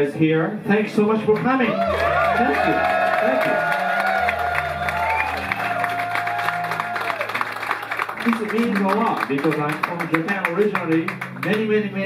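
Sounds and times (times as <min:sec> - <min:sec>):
audience applauding: 0:01.4 - 0:11.9.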